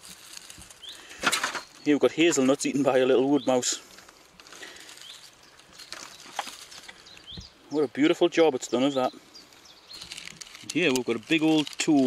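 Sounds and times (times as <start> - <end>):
dry leaves rustling: 0.0 - 12.0.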